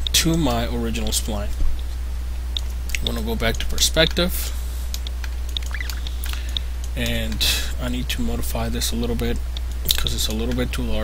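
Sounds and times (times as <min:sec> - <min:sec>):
low electrical hum: 0:00.0 - 0:11.0
computer mouse clicks: 0:04.9 - 0:07.2.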